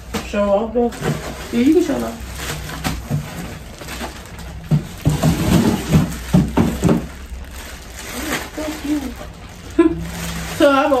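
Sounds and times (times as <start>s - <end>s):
plastic bag rustling and crinkling: 0.0s - 11.0s.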